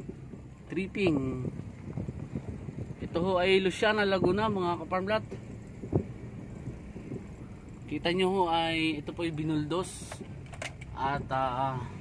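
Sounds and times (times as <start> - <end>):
car engine and tyres humming: 0.0 - 12.0.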